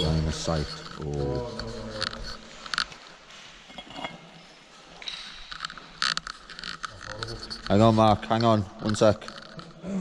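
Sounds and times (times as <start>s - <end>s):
small scrapes and clinks: 0.0s - 9.8s.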